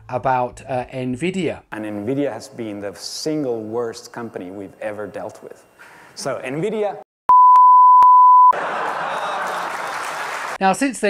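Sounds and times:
one-tone censor bleep: 7.3 - 8.6
audience applause: 8.6 - 10.6.

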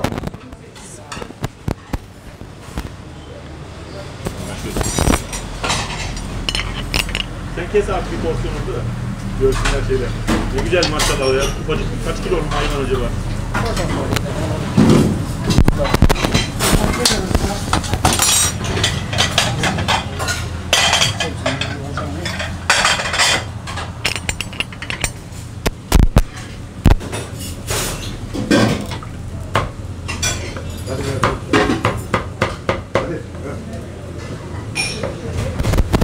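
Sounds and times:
plates and utensils clinking: 4.2 - 7.4, 9.4 - 13.0, 14.8 - 29.1, 30.0 - 32.7, 34.2 - 36.0.

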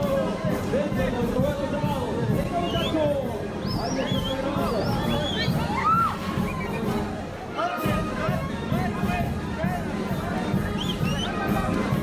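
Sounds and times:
crowd shouting and cheering: 0.0 - 12.0
high-pitched shouts and whoops: 4.9 - 6.9.

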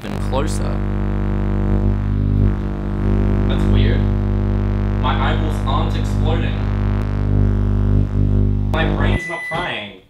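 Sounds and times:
microwave electrical hum: 0.0 - 9.4.

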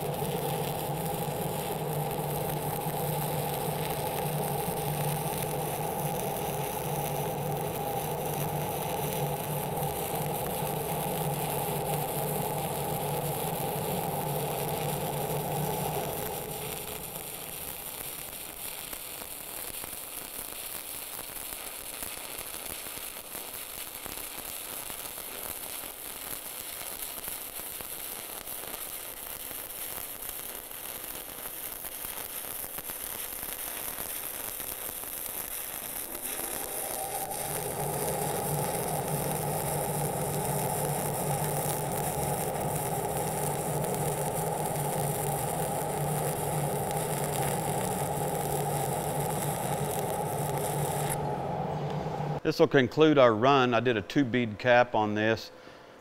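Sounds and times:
machine hum: 0.0 - 18.6, 35.5 - 52.6
welding arc crackling: 0.0 - 52.6.

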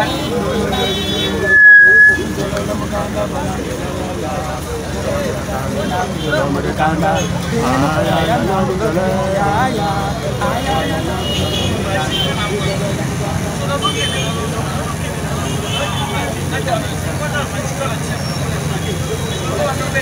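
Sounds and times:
men's voices: 0.0 - 20.0
street traffic rumble: 0.0 - 20.0.

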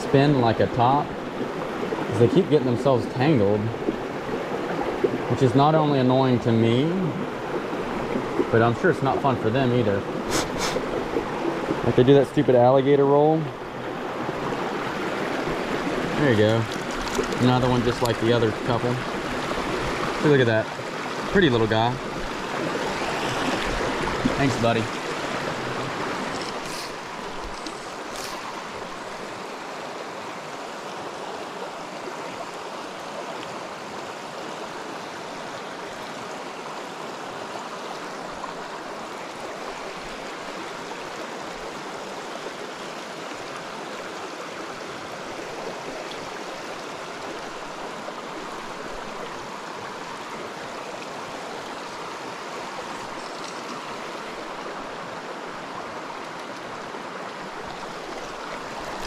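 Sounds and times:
creek running over rocks: 0.0 - 59.0.

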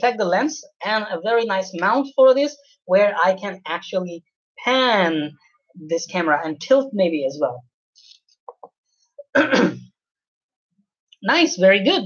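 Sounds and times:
man clearing his throat: 9.3 - 9.9.

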